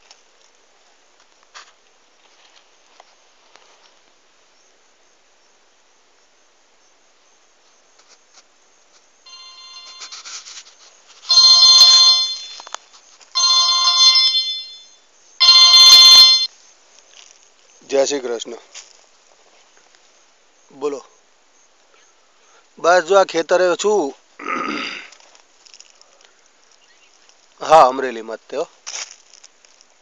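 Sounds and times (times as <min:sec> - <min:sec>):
mobile phone ringtone: 0:09.3 - 0:10.3, 0:11.3 - 0:12.8, 0:13.4 - 0:16.5.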